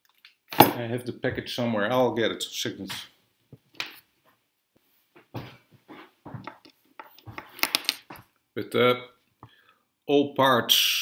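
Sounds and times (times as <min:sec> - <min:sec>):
packet rustling and knocks: 0:06.4 - 0:08.3.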